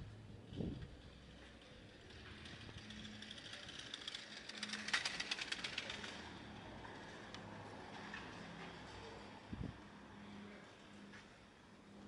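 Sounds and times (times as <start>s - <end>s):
bicycle rattling over cobblestones: 0.0s - 10.1s.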